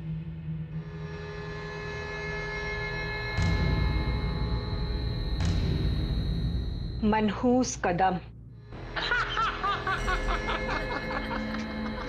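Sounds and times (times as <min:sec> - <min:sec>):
background music held tones: 0:00.0 - 0:12.0
high-pitched laugh: 0:09.0 - 0:12.0.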